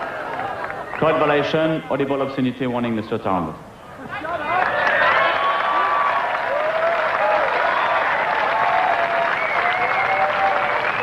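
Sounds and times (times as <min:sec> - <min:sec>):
crowd clapping: 0:00.0 - 0:01.8, 0:04.5 - 0:11.0.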